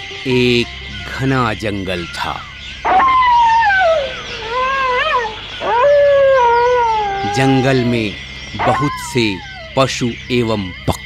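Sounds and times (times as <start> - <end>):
wild canid howling: 0.2 - 10.8.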